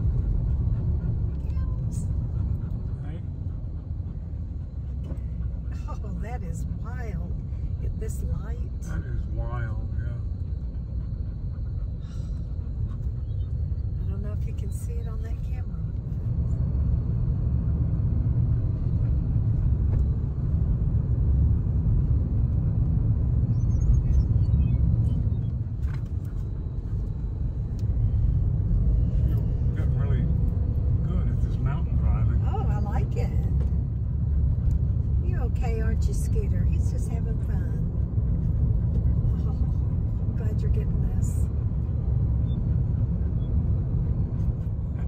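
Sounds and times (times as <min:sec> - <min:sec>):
vehicle cabin road rumble: 0:00.0 - 0:45.0.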